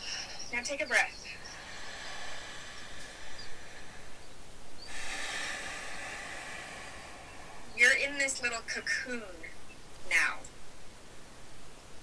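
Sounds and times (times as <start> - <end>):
man exhaling: 1.4 - 7.9
man inhaling: 1.4 - 8.2.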